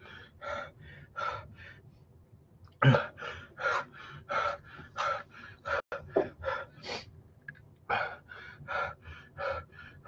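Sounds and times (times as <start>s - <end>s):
man gasping breaths: 7.9s - 10.0s.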